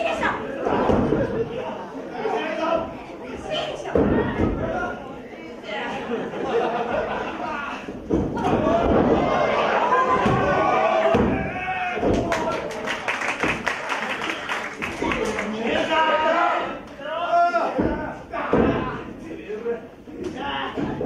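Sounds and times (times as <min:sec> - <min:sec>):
people shouting: 0:08.3 - 0:12.8, 0:15.0 - 0:19.0
sharp claps: 0:12.0 - 0:15.5.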